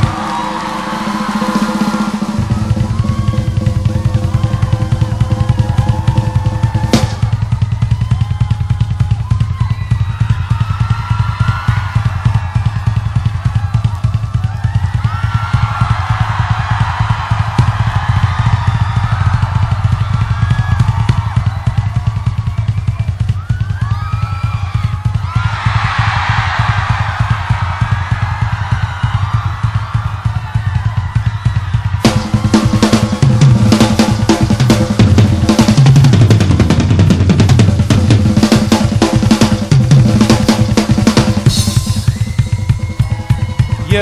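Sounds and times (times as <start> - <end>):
audience shouting and cheering: 0.0 - 44.0
rapid bass drum pattern: 0.0 - 44.0
rock drum solo: 0.0 - 44.0.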